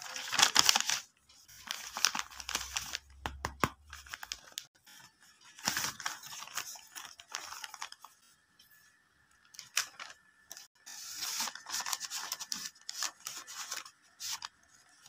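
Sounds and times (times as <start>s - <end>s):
paper rustling and crinkling: 0.0s - 3.1s, 3.9s - 8.8s, 9.5s - 15.0s.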